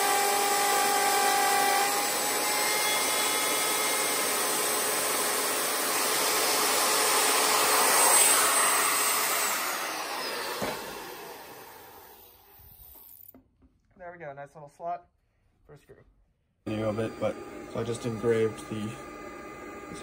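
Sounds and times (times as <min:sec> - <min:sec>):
router cutting hardwood: 0:00.0 - 0:13.1, 0:16.7 - 0:20.0
motor winding down whine: 0:00.0 - 0:13.4, 0:16.7 - 0:20.0.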